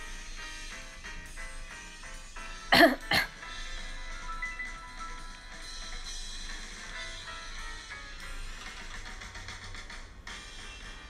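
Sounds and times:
quiet background music: 0:00.0 - 0:11.0
person coughing: 0:02.7 - 0:03.4.

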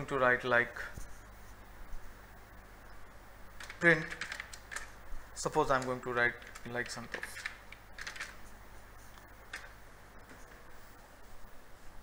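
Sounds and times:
computer keyboard keys clicking: 0:03.6 - 0:05.0, 0:05.7 - 0:08.4, 0:09.5 - 0:09.8.

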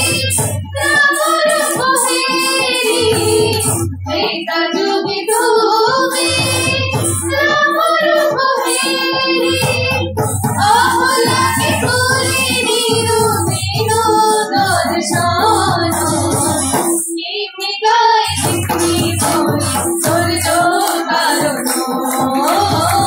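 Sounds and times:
drums: 0:00.0 - 0:17.1, 0:18.3 - 0:23.0
women singing: 0:00.0 - 0:23.0.

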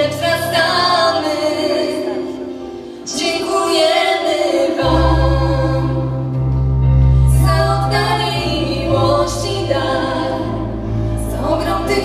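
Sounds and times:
vocal group singing in harmony: 0:00.0 - 0:12.0
low bass accompaniment: 0:04.8 - 0:12.0.

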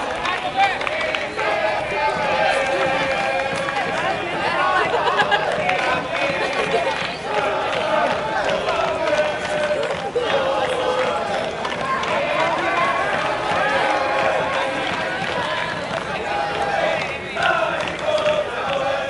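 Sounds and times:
crowd shouting and calling: 0:00.0 - 0:19.0.

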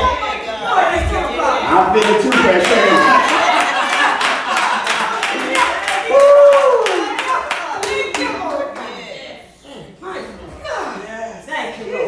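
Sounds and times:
congregation clapping: 0:01.7 - 0:08.9.

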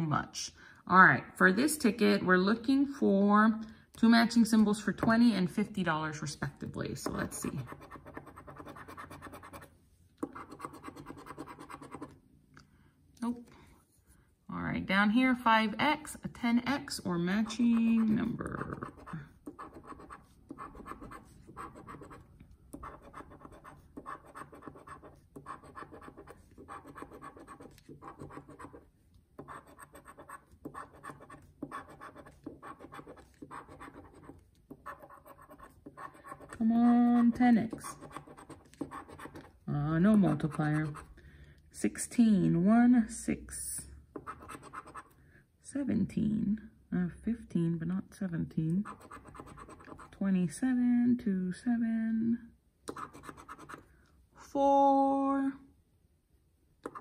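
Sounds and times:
scratching lottery ticket: 0:22.8 - 0:28.8, 0:29.4 - 0:36.6.

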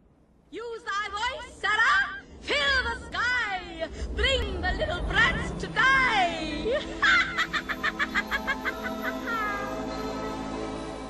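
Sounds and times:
orchestral film score: 0:01.4 - 0:11.0
woman cackling laugh: 0:06.7 - 0:10.3.

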